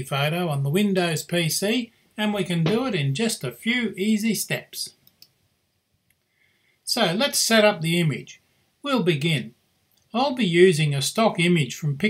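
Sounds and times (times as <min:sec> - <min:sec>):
man narrating: 0:00.0 - 0:05.0, 0:06.9 - 0:09.5, 0:10.2 - 0:12.0
faint clicks: 0:05.0 - 0:05.4.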